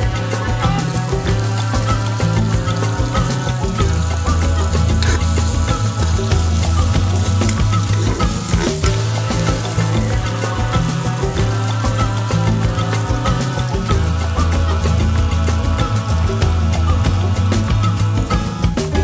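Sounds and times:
food sizzling in hot oil: 0:00.0 - 0:18.8
background music with bass line: 0:00.0 - 0:19.0
spatula stirring in pot: 0:01.1 - 0:13.9.

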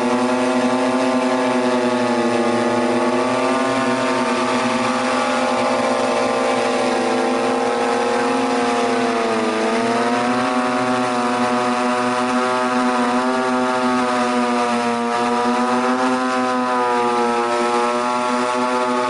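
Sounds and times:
quadcopter rotors buzzing: 0:00.0 - 0:19.0.

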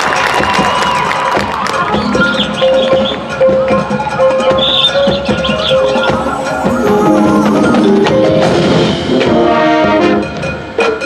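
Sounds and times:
crowd noise: 0:00.0 - 0:09.3
sharp percussion strikes: 0:00.0 - 0:11.0
marching band music: 0:00.4 - 0:11.0.

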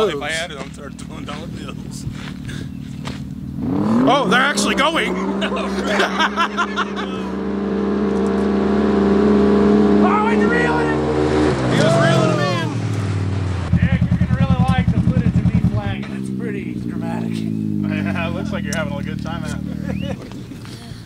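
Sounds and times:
engine throbbing at low revs: 0:00.0 - 0:21.0
utv engines revving high: 0:00.0 - 0:21.0
voices and laughter: 0:04.2 - 0:07.6, 0:11.6 - 0:12.9, 0:17.2 - 0:21.0.

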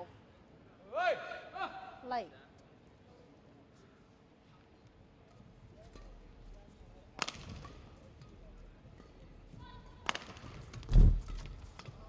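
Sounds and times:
sharp crack: 0:07.2 - 0:07.7.

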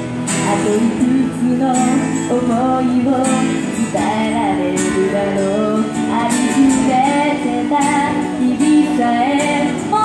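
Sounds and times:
acoustic guitar: 0:00.0 - 0:10.0
woman singing into a microphone: 0:00.3 - 0:10.0.

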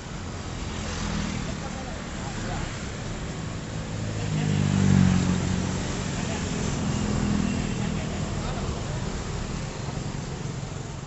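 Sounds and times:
road noise: 0:00.0 - 0:11.0
small motorcycles passing: 0:00.5 - 0:10.4.

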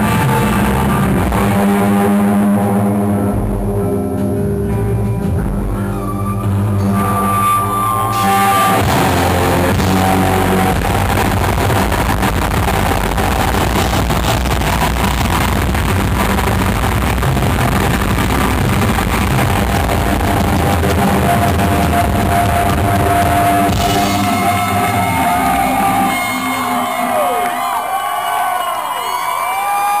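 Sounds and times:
live rock band playing: 0:00.0 - 0:27.8
crowd cheering and whistling: 0:06.0 - 0:16.7, 0:19.0 - 0:30.0.

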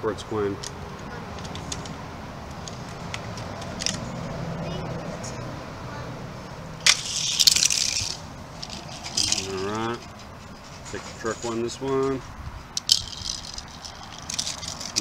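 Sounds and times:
toy cars rolling down plastic track: 0:06.9 - 0:09.6, 0:12.8 - 0:15.0.

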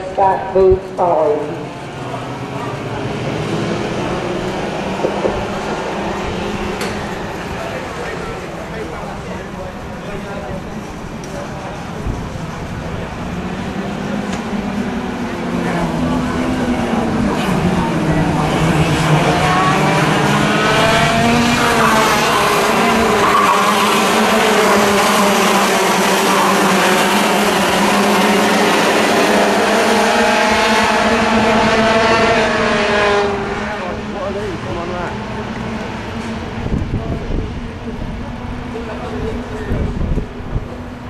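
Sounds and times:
racing kart engines revving: 0:00.0 - 0:41.0.

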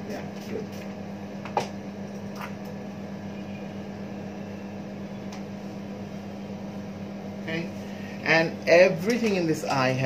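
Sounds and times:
room ventilation whir: 0:00.0 - 0:10.0.

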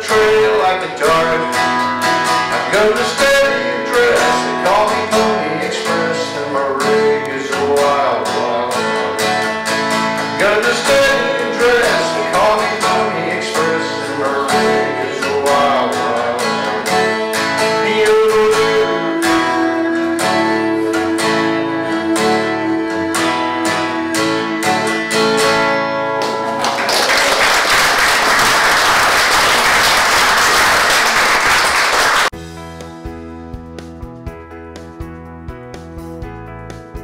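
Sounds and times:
fingerstyle acoustic guitar: 0:00.0 - 0:26.8
audience applause: 0:26.2 - 0:32.4.

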